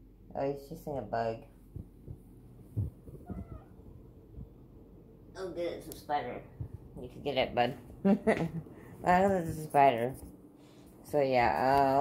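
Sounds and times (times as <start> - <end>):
cat meowing faintly: 3.2 - 3.8.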